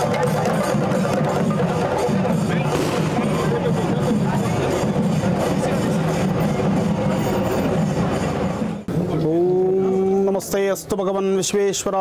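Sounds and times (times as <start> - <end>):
loud dense music: 0.0 - 9.1.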